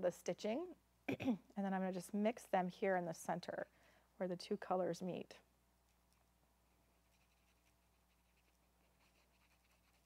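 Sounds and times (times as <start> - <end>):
marker brush scratching on card: 5.9 - 10.0.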